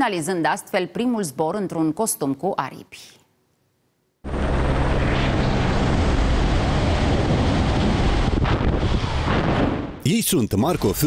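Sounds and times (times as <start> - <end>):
air rushing over microphone: 4.3 - 10.0.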